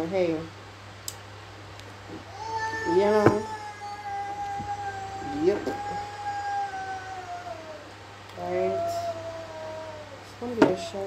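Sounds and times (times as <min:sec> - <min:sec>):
long animal cry: 0:02.3 - 0:10.2.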